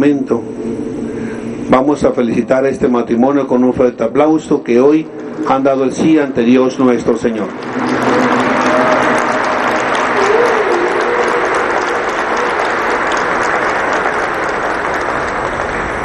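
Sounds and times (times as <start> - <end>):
crowd applauding: 5.2 - 16.0.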